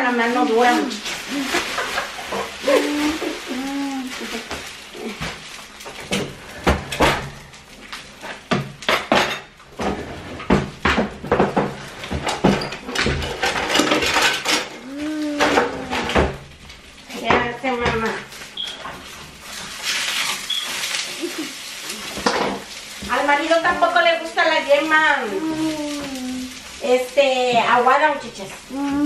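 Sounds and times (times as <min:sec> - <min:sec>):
eggs sizzling in a pan: 0:00.0 - 0:29.0
person speaking: 0:02.6 - 0:05.2, 0:14.8 - 0:16.2, 0:24.8 - 0:27.0, 0:28.7 - 0:29.0.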